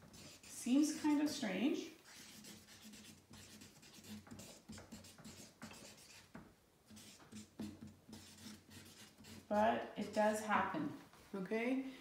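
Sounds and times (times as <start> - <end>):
marker writing on paper: 0.0 - 1.4, 2.0 - 10.3.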